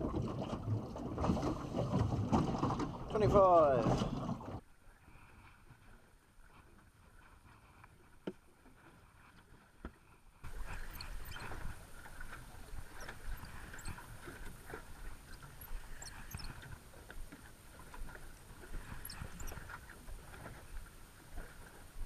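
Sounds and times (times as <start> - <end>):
waves slapping against boat: 0.0 - 4.6.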